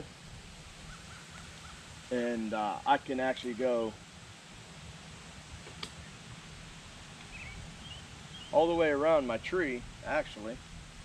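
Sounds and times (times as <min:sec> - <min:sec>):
small click: 0:05.7 - 0:06.0.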